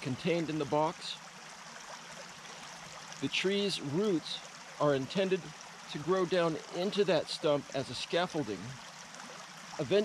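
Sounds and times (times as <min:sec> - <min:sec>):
creek flowing water: 0:00.0 - 0:10.0.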